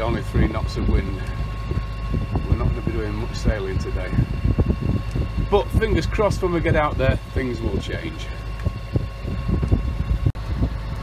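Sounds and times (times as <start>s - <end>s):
boat engine rumbling: 0.0s - 11.0s
wind buffeting microphone: 0.0s - 11.0s.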